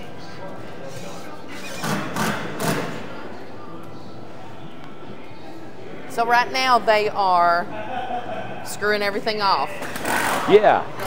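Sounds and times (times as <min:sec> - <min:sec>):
workshop background noise: 0:00.0 - 0:11.0.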